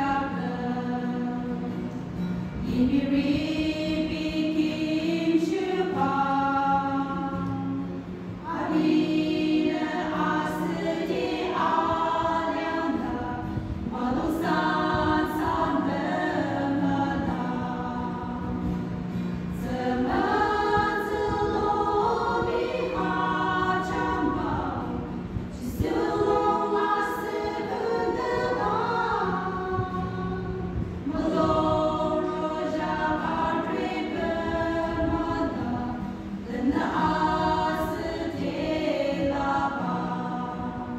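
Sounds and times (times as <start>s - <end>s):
women singing a hymn: 0.0s - 40.9s.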